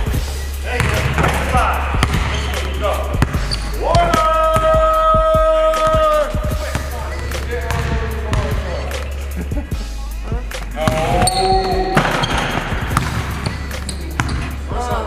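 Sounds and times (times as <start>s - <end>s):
music: 0.0s - 15.0s
basketball bouncing on hardwood floor: 3.2s - 4.7s, 7.7s - 8.5s, 10.8s - 13.6s, 14.2s - 14.5s.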